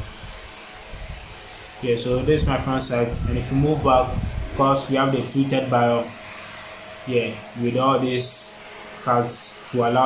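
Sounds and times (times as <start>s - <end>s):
room fan whirring: 0.0s - 10.0s.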